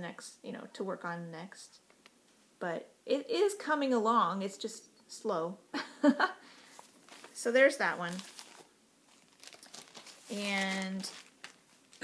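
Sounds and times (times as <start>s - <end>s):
person speaking: 7.2s - 8.4s, 10.2s - 11.4s.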